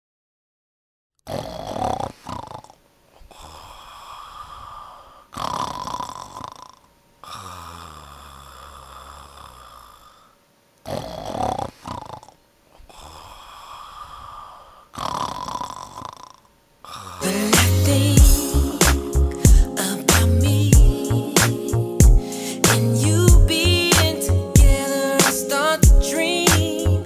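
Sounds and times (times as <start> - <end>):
dog snoring: 1.3 - 19.8.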